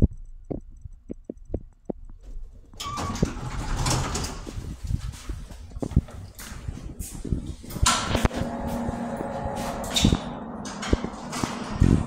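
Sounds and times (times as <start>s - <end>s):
steady low hum: 0.0s - 12.0s
footsteps: 0.5s - 10.3s, 10.9s - 12.0s
elevator doors sliding open: 2.8s - 4.8s, 7.4s - 12.0s.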